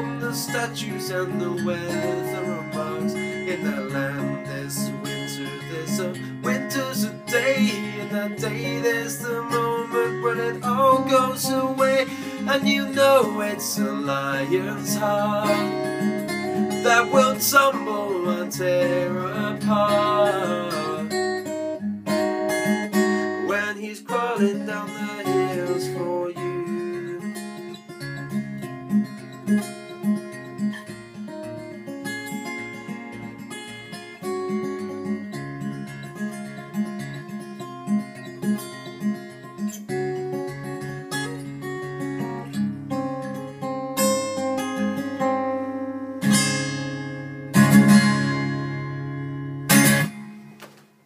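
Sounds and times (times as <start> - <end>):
acoustic guitar picking: 0.0 - 51.0
strummed guitar chords: 0.0 - 51.0.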